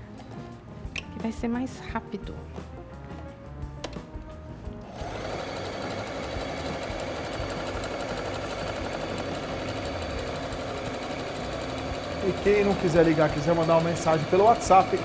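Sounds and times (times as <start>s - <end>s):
sewing machine stitching fast: 4.9s - 15.0s.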